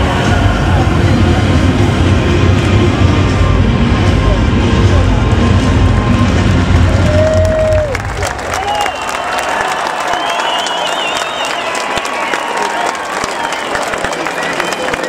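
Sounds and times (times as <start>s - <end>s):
loud low rumble: 0.0s - 9.1s
crowd applauding and cheering: 0.0s - 15.0s
whistles: 8.6s - 15.0s.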